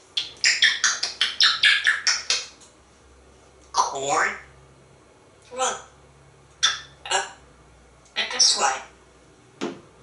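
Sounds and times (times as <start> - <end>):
parrot high-pitched calls: 0.2 - 2.5, 3.8 - 4.5, 6.6 - 7.4, 8.2 - 8.9.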